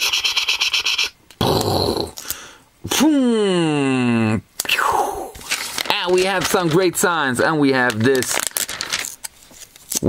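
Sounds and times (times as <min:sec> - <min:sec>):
plastic stickers rustling: 0:05.4 - 0:10.0.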